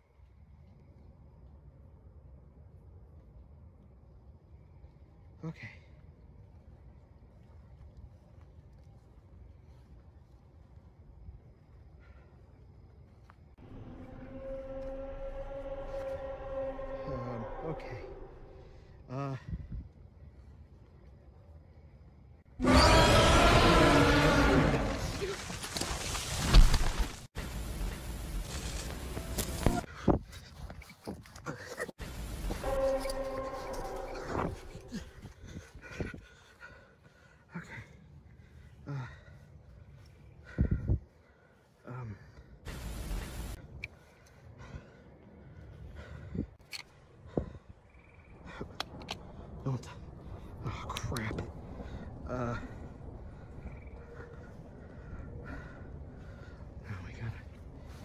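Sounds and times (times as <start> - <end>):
large creature roaring: 22.6 - 25.2
rustling through brush: 24.6 - 35.8.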